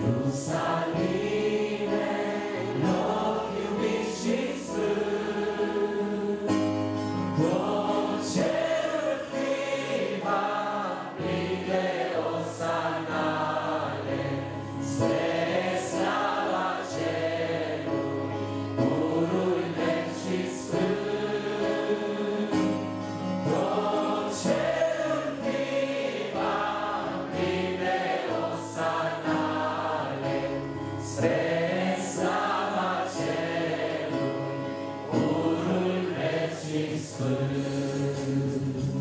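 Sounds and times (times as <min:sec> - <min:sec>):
man singing into a microphone: 0:00.0 - 0:01.1, 0:35.2 - 0:39.0
keyboard chords: 0:00.0 - 0:39.0.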